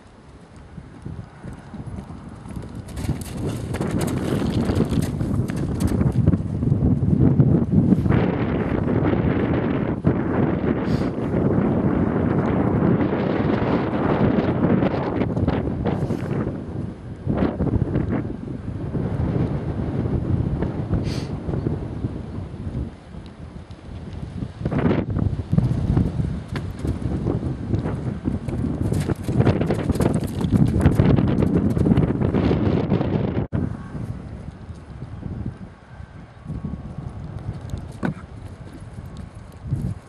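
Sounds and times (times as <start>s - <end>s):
horse hoofbeats on grass: 0.0s - 10.5s, 23.6s - 32.4s, 36.4s - 40.0s
wind noise on microphone: 0.0s - 40.0s.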